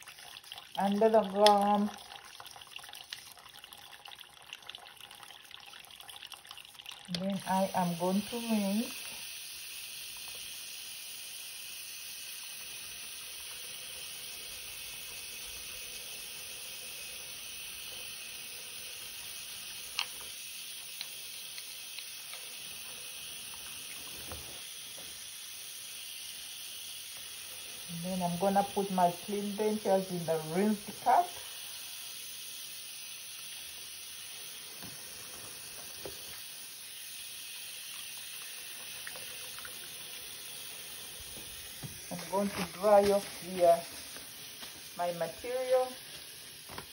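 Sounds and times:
tap water running into sink: 0:00.0 - 0:46.9.

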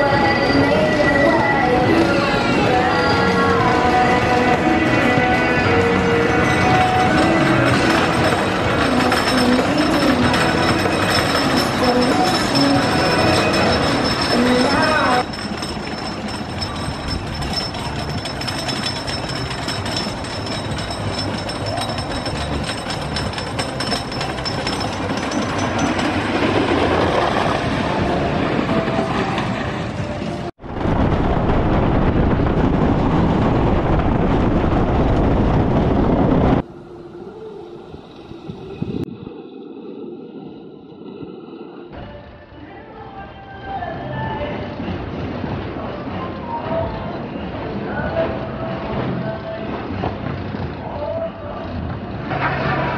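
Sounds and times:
roller coaster clattering on track: 0:00.0 - 0:36.7
wind rushing over microphone: 0:25.0 - 0:42.0.

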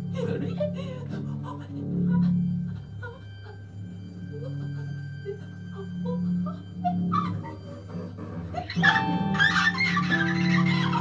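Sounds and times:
bright noisy texture with held tones: 0:00.0 - 0:11.0
low drone: 0:00.0 - 0:11.0.

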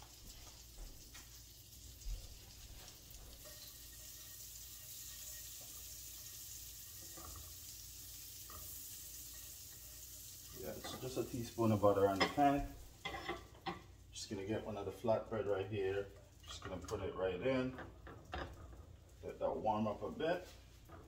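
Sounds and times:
butter sizzling in a pan: 0:00.0 - 0:21.0.

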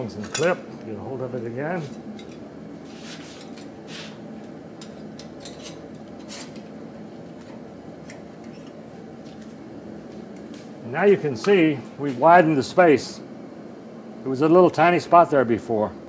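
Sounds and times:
low machine hum: 0:00.0 - 0:16.0
metal tongs clinking: 0:00.2 - 0:00.6.

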